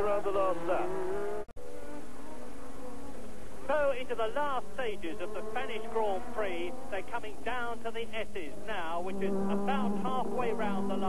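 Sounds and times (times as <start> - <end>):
race car engines at high revs: 0.0 - 11.0.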